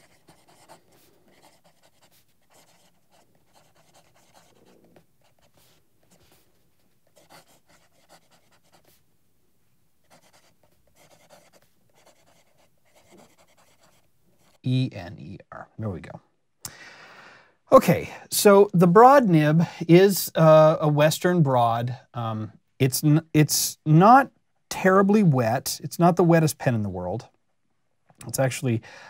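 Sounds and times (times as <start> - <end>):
pen nib scratching on paper: 0.0 - 9.0, 10.1 - 14.6.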